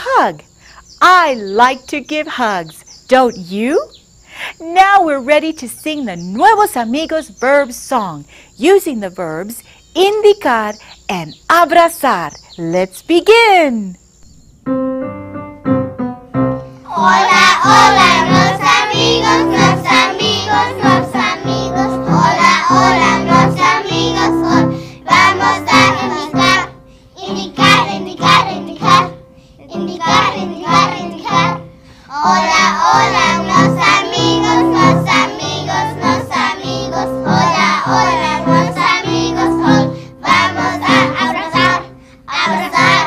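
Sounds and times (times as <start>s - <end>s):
instrumental backing music: 14.2s - 43.0s
children singing together: 16.8s - 43.0s.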